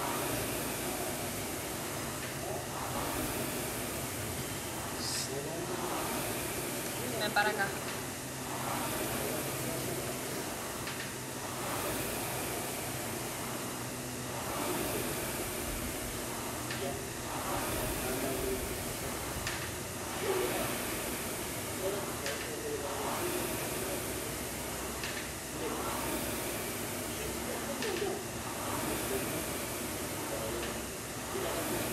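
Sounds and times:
rowing machine flywheel whooshing: 0:00.0 - 0:31.9.

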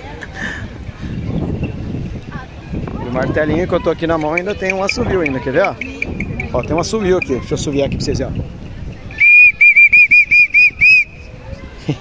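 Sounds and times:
toy whistle toots: 0:09.2 - 0:11.1.

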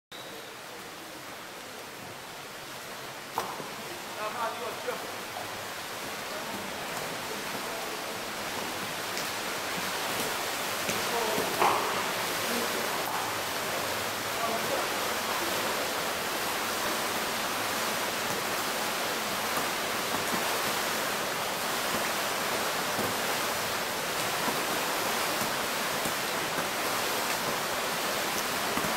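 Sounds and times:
swimmers splashing in a pool: 0:00.2 - 0:28.9.

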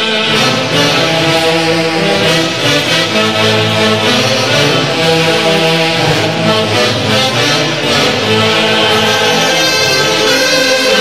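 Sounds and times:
saxophone section: 0:00.0 - 0:11.0.

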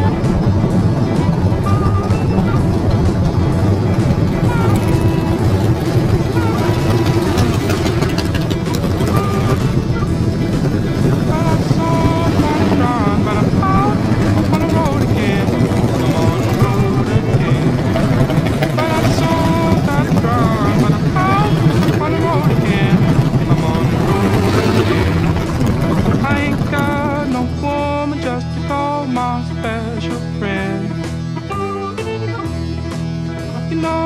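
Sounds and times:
motorcycle engines riding past: 0:00.0 - 0:28.4
plucked guitar music: 0:00.0 - 0:34.0
wavering melody music: 0:00.0 - 0:34.0.

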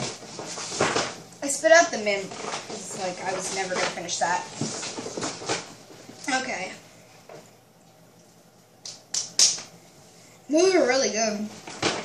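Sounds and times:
sharp hand clap: 0:08.8 - 0:09.7.

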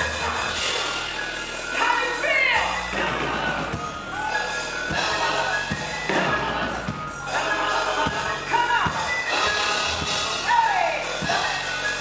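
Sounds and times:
bass guitar: 0:00.0 - 0:12.0
keyboard: 0:00.0 - 0:12.0.

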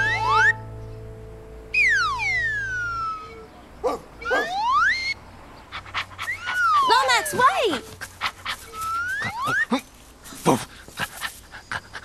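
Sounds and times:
slide whistle gliding: 0:01.7 - 0:03.5, 0:04.2 - 0:05.2
dog panting: 0:05.7 - 0:09.0, 0:10.5 - 0:12.0.

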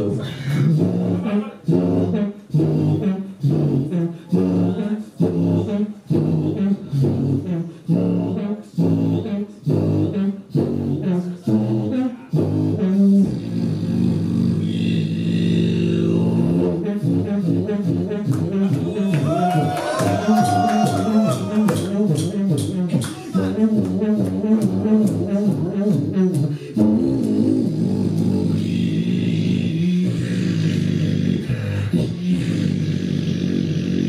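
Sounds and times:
beatboxed droning bass hum: 0:00.0 - 0:34.0
beatboxing kick and snare: 0:16.8 - 0:34.0.

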